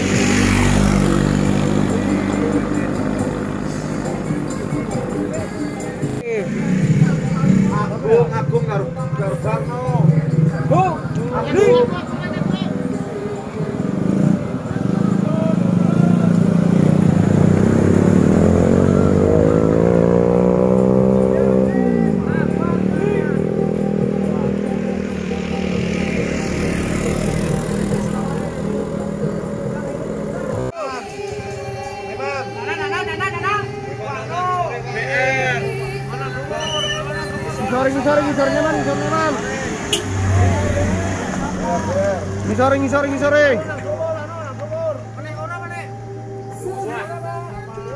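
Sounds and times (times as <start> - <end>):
car engine driving past: 0.0 - 4.8, 13.0 - 30.7, 34.3 - 46.8.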